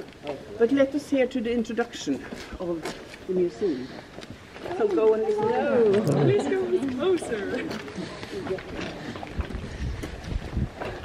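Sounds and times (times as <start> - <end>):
wind buffeting microphone: 7.6 - 11.0.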